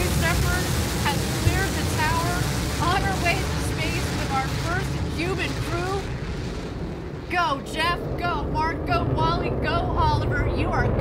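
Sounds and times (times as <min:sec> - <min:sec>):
rocket engine rumble: 0:00.0 - 0:11.0.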